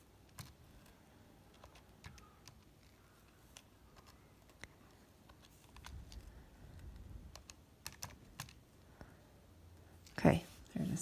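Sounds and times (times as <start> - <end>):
calculator keys clicking: 1.5 - 8.6.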